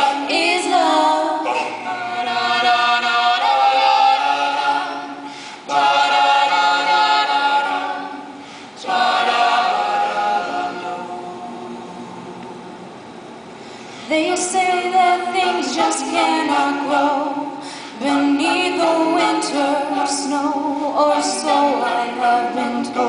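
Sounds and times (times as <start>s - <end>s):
group singing close harmony: 0.0s - 12.2s, 14.1s - 23.0s.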